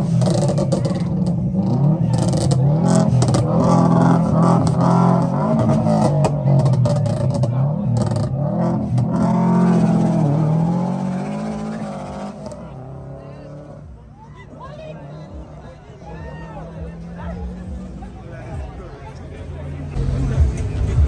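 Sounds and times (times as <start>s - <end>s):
car engine revving: 0.0s - 21.0s
crowd voices: 0.0s - 21.0s.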